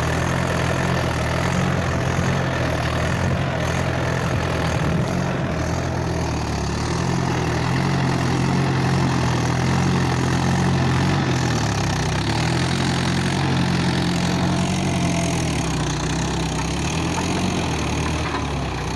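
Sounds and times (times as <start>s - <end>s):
tractor diesel engine running: 0.0s - 18.9s.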